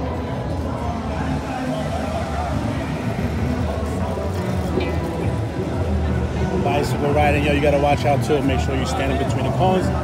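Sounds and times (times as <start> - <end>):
crowd chatter: 0.0 - 10.0
music playing: 0.0 - 10.0.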